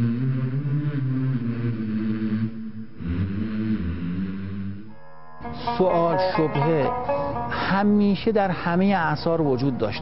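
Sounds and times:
background music of low notes: 4.9 - 10.0.

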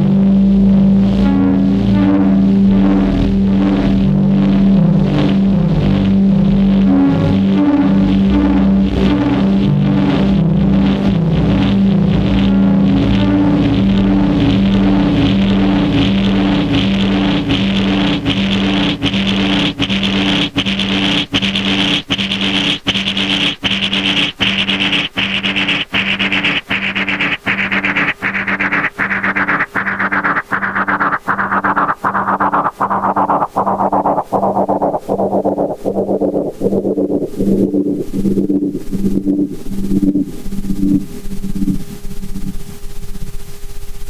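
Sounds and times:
synthesizer droning sequence: 0.0 - 44.0.

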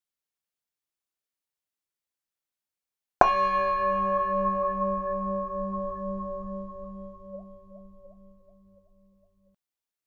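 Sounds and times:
singing bowl ringing: 3.2 - 9.5.

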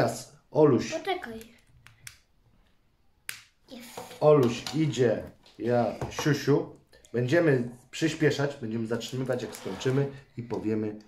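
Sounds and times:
child's voice: 0.9 - 1.6, 3.7 - 4.2.

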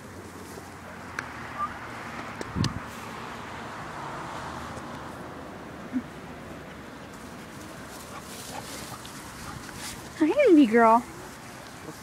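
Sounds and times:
outdoor background noise: 0.0 - 12.0
rustling: 7.1 - 12.0.

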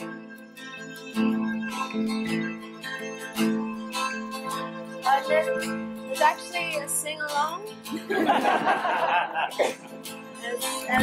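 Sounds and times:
acoustic guitar picking melody: 0.0 - 11.0.

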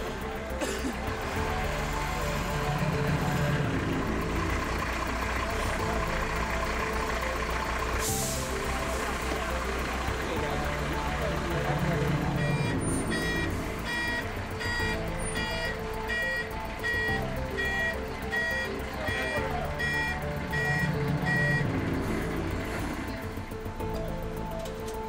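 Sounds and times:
truck engine running: 0.0 - 25.0
reversing alarm beeping: 1.3 - 23.2.

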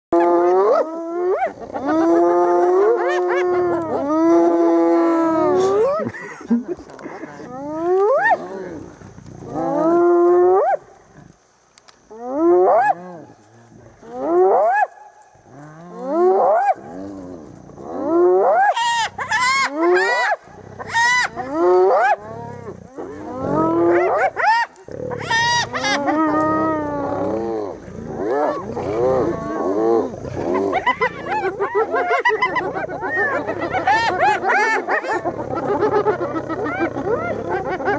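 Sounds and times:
hyenas whooping: 0.2 - 6.2, 16.0 - 37.9
high wavering hyena calls: 18.3 - 22.2, 23.0 - 27.1, 30.4 - 37.9.

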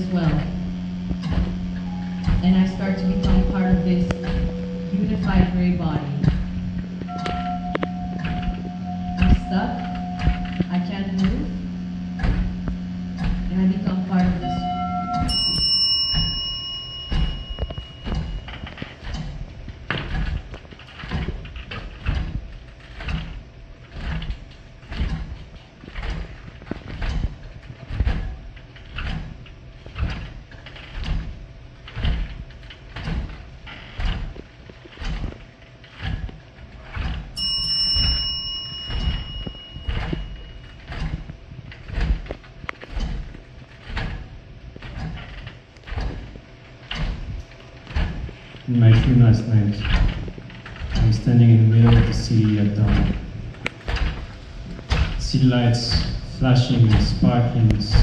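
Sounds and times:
low thuds beat: 0.0 - 15.5
low hum: 0.0 - 58.0
ringing chime-like tone: 1.8 - 6.2, 7.0 - 10.7, 14.4 - 18.9, 37.4 - 41.0.

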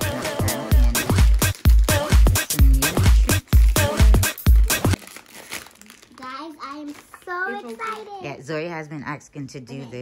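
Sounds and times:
plastic bag crinkling: 1.0 - 8.7
child speaking: 6.1 - 8.3.

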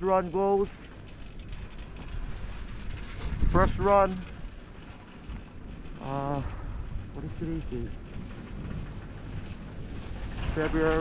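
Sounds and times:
chairlift cable running: 0.0 - 11.0
wind noise: 0.0 - 11.0.

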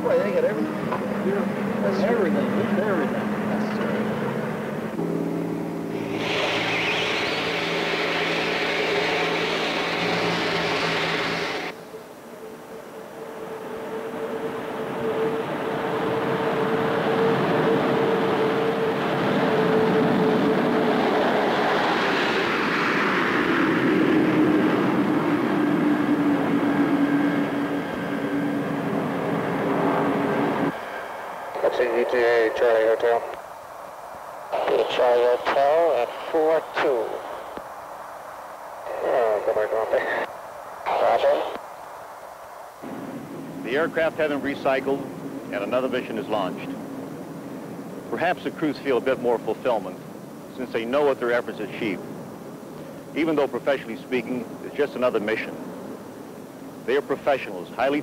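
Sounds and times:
jet engines whining: 0.0 - 58.0
rushing hiss: 5.9 - 11.8
radio voice: 31.6 - 33.4, 34.5 - 37.5, 38.8 - 41.6.

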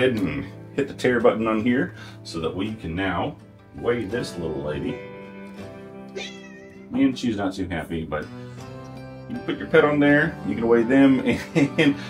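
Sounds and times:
soft guitar music: 0.0 - 12.0
cat meowing displeased: 6.1 - 7.0.

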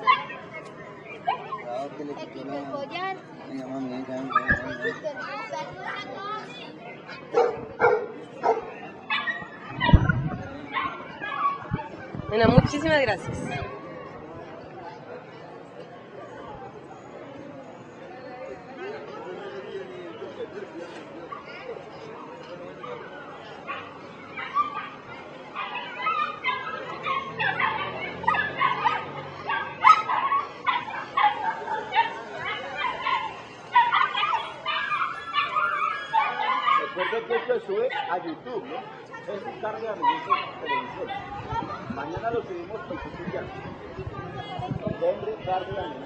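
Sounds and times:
crowd murmur: 0.0 - 46.0
dogs barking: 7.2 - 11.9, 22.8 - 38.2, 40.0 - 41.6.

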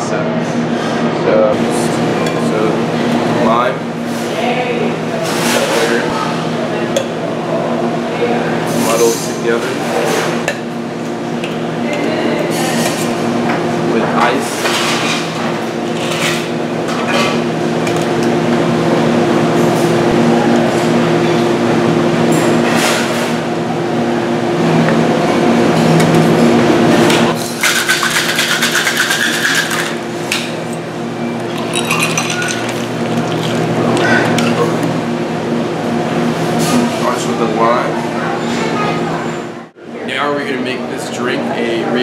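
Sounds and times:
ice rattling in cocktail shaker: 27.6 - 30.0, 31.6 - 33.7
ice and glassware clinking: 31.4 - 34.7.

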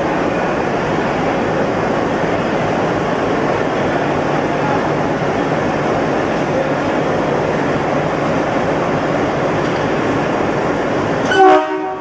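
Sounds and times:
diesel locomotive engine rumbling: 0.0 - 12.0
locomotive horn blast: 11.3 - 12.0.

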